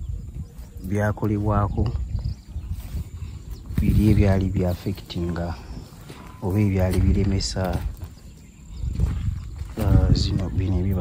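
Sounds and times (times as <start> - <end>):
wind buffeting microphone: 0.0 - 11.0
man speaking: 3.8 - 5.8, 6.4 - 7.9, 9.8 - 11.0.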